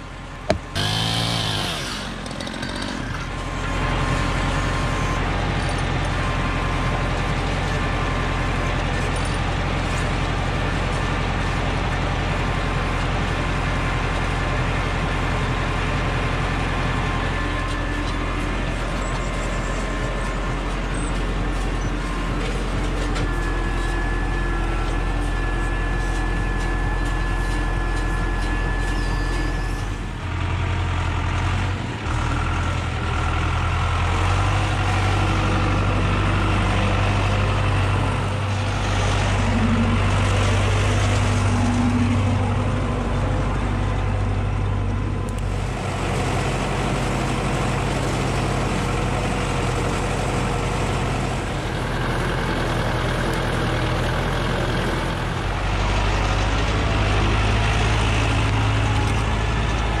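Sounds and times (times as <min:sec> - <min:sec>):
tractor diesel engine under load: 0:00.0 - 1:00.0.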